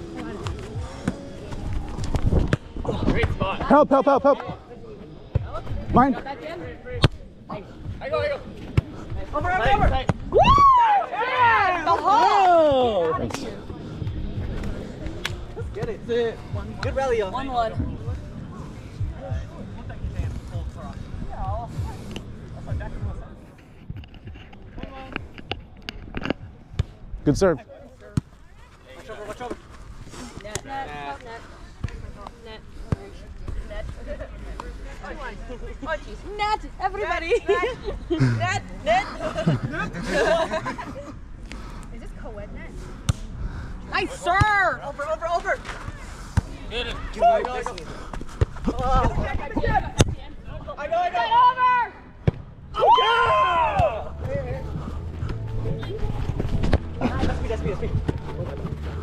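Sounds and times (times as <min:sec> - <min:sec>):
people talking in background: 0:00.0 - 0:59.0
players shouting: 0:52.7 - 0:54.3.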